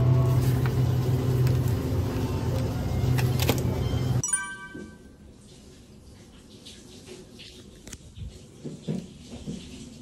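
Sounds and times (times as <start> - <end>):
refrigerated display case noise: 0.0 - 4.2.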